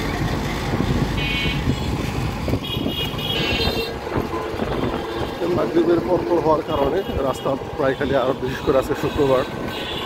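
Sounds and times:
street traffic noise: 0:00.0 - 0:10.0
high-pitched horn toots: 0:02.6 - 0:05.4.

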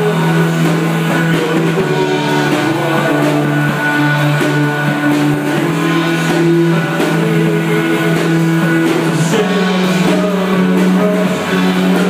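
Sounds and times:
band playing guitars and keyboard: 0:00.0 - 0:12.0.

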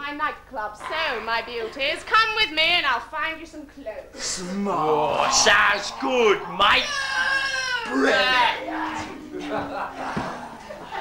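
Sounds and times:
person wailing cry: 0:04.8 - 0:10.0.

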